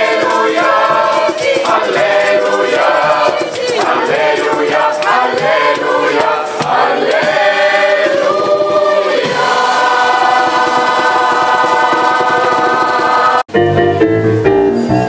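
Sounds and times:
gospel choir singing: 0:00.0 - 0:13.5
shaker strokes: 0:00.0 - 0:13.5.

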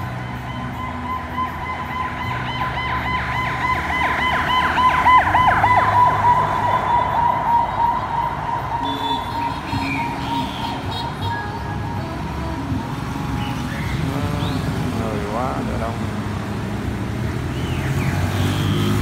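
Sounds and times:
siren-like warbling tone: 0:00.0 - 0:13.0
steady high tone: 0:00.0 - 0:16.1
street noise: 0:00.0 - 0:19.0.

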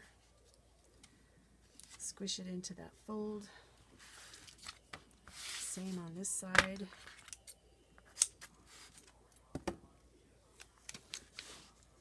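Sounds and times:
paper rustling: 0:04.0 - 0:06.0.

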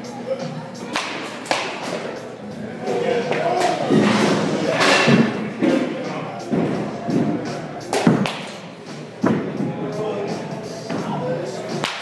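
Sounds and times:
bat cracking against ball: 0:11.8 - 0:12.0.

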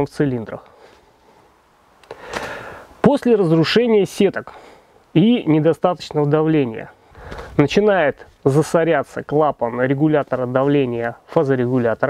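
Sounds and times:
man breathing in: 0:00.7 - 0:03.0, 0:04.5 - 0:05.0, 0:07.0 - 0:07.6.

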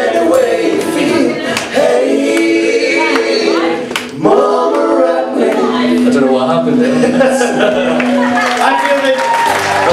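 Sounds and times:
voices singing together: 0:00.0 - 0:07.9.

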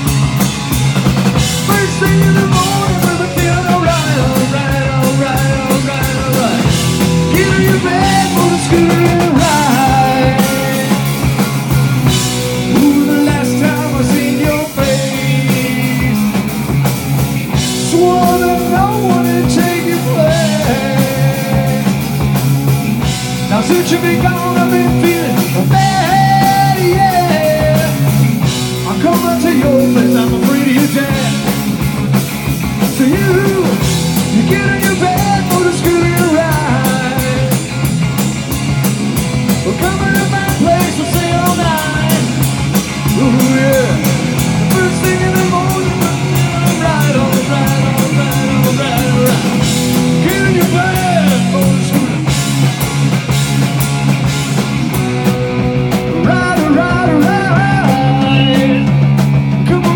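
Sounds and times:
bending lead guitar line: 0:00.0 - 0:59.9
live rock band playing: 0:00.0 - 0:59.9.

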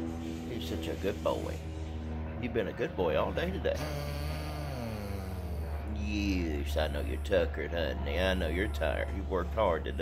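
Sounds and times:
low hum: 0:00.0 - 0:10.0
dog groaning: 0:03.6 - 0:07.6.

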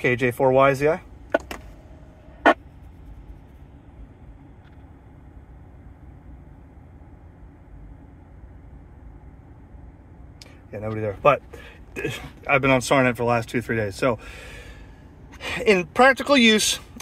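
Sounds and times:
air-conditioning fan: 0:00.0 - 0:17.0.

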